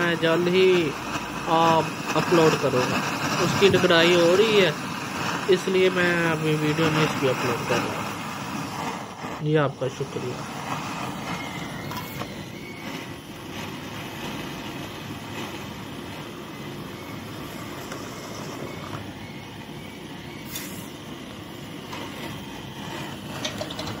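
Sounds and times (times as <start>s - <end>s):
blowtorch burning: 0.0s - 24.0s.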